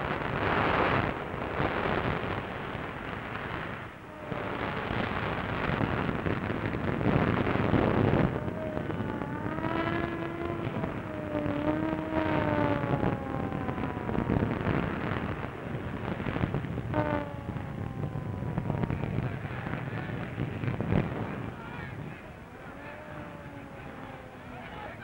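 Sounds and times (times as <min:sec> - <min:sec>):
sharp cracks: 0:00.0 - 0:24.6
rough noisy din: 0:00.0 - 0:25.0
sirens wailing: 0:04.0 - 0:25.0.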